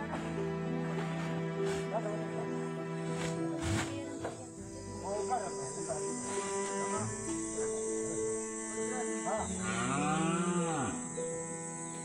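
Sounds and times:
background music: 0.0 - 12.0
cow mooing: 6.2 - 11.1.

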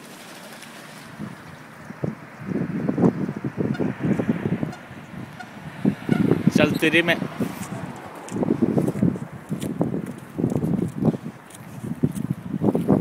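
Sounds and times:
ducks quacking: 3.3 - 6.9.

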